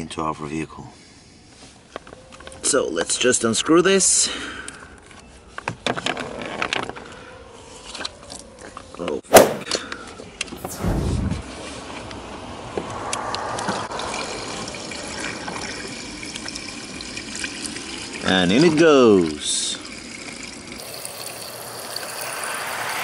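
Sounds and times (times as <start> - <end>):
fluid pouring into reservoir: 14.0 - 23.0.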